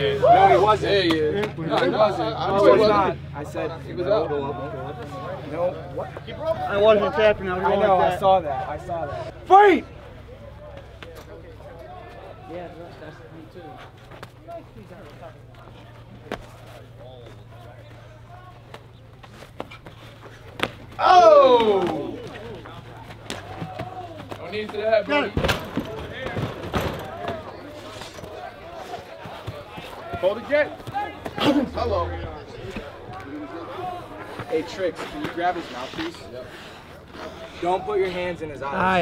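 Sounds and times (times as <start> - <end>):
faint voices talking: 0.0 - 39.0
steady low hum: 31.4 - 34.2.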